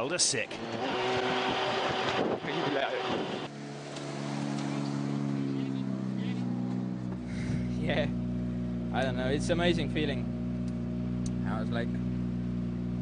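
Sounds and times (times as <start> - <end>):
in-cabin engine and road noise: 0.0 - 13.0
car engine idling: 0.2 - 13.0.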